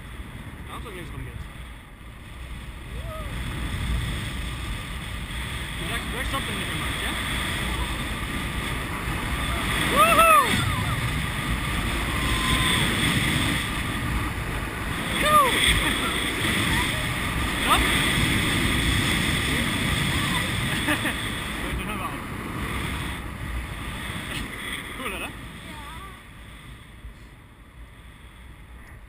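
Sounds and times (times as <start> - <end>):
wind rushing on microphone: 0.0 - 29.0.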